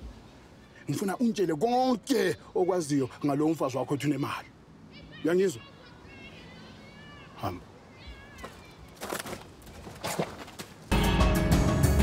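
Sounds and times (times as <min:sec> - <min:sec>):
man speaking: 0:00.8 - 0:04.5, 0:07.4 - 0:07.7.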